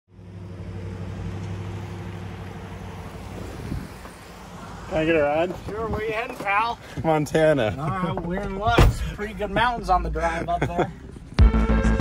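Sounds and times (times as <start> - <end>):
van engine humming: 0.1 - 12.0.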